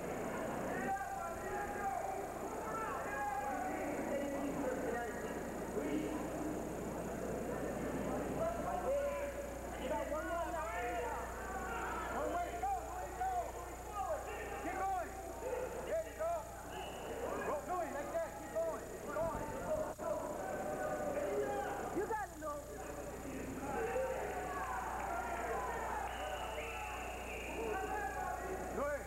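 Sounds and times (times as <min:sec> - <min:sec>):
crowd shouting: 0:10.5 - 0:17.5, 0:23.5 - 0:28.8.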